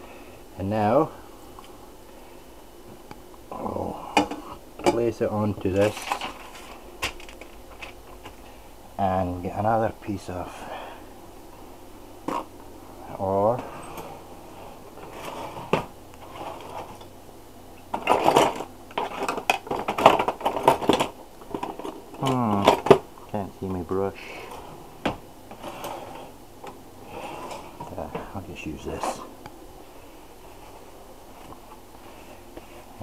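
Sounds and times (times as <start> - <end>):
kitchen utensils clattering: 17.9 - 23.0
man's voice: 27.9 - 29.3.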